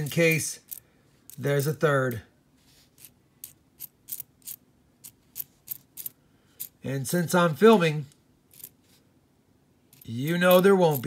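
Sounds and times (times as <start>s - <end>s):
coins clicking together: 0.0s - 1.8s, 3.0s - 6.8s, 8.5s - 8.8s, 9.9s - 11.0s.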